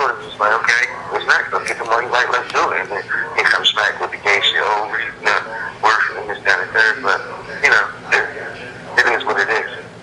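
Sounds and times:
person talking over phone line: 0:00.0 - 0:10.0.

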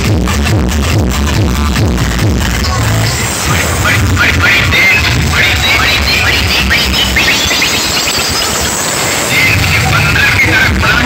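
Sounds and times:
loud distorted dj music: 0:00.0 - 0:11.0.

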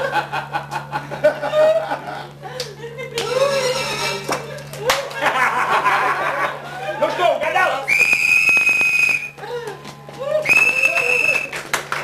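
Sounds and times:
shrill whistle blasts: 0:07.8 - 0:09.4, 0:10.4 - 0:11.6.

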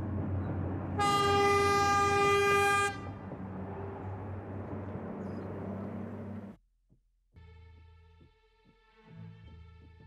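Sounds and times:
locomotive horn blast: 0:00.9 - 0:04.0.

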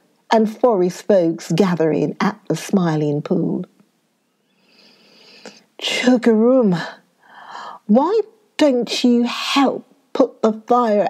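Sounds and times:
woman speaking: 0:00.3 - 0:03.7, 0:05.8 - 0:07.0, 0:07.6 - 0:11.0
woman breathing in: 0:04.5 - 0:05.6, 0:07.2 - 0:07.8.

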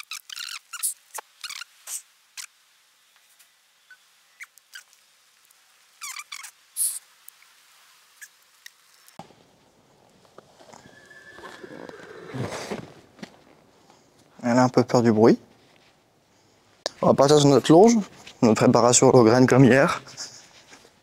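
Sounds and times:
faint high chirps and clicks: 0:00.0 - 0:02.5, 0:03.1 - 0:07.5
rustling scuffing noise: 0:09.2 - 0:18.7, 0:20.0 - 0:21.0.

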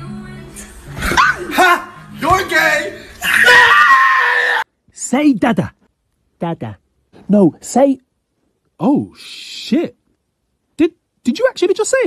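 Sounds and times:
long high scream: 0:03.2 - 0:04.7.

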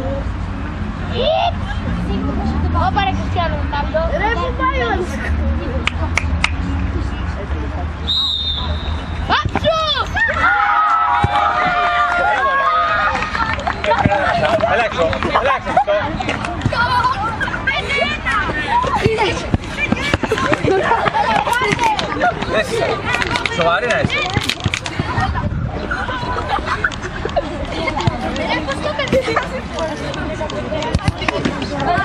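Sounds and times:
group of voices chattering: 0:00.0 - 0:32.0
referee's whistle blast: 0:08.1 - 0:09.1.

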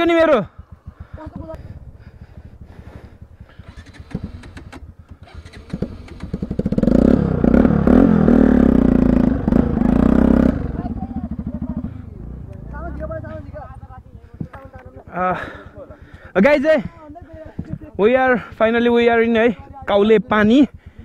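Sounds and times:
motorcycle engine revving: 0:00.0 - 0:20.8.

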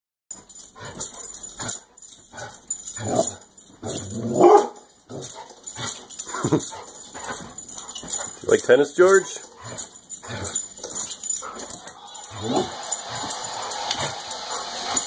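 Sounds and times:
dog barking and yipping: 0:02.4 - 0:15.0.

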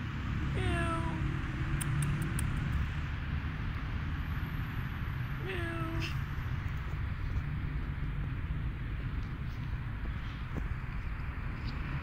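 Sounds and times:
cat meowing: 0:00.6 - 0:01.2.

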